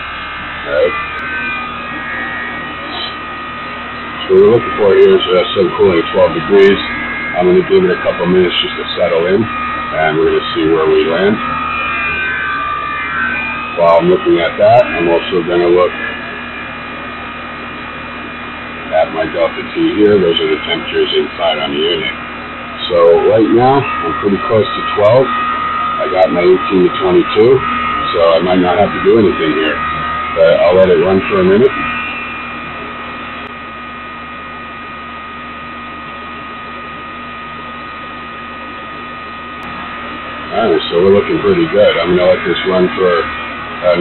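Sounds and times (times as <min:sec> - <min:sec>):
air conditioner unit humming: 0:00.0 - 0:44.0
high whine: 0:00.0 - 0:44.0.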